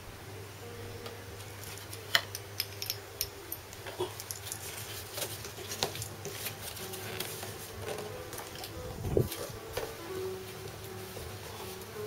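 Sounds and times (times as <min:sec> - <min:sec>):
steady low hum: 0:00.0 - 0:12.0
paper and cardboard rustling: 0:04.4 - 0:12.0.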